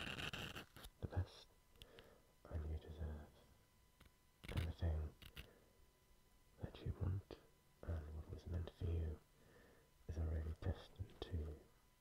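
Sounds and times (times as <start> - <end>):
close whispering: 1.0 - 1.5, 2.4 - 3.4, 6.6 - 9.2, 10.1 - 11.7.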